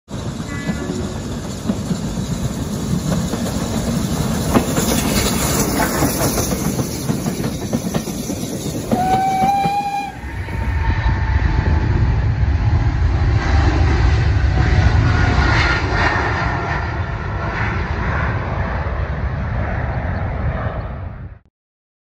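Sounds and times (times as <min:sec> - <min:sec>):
train rattling past: 0:00.1 - 0:20.7
jet engines rumbling: 0:00.1 - 0:21.4
train horn blast: 0:00.5 - 0:01.2, 0:08.9 - 0:11.2.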